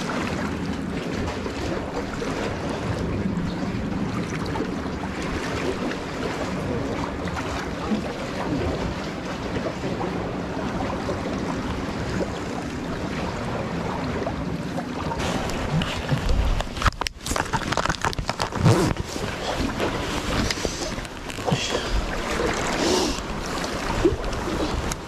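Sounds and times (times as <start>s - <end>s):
water lapping around concrete: 0.0s - 25.0s
wind on microphone: 0.0s - 25.0s.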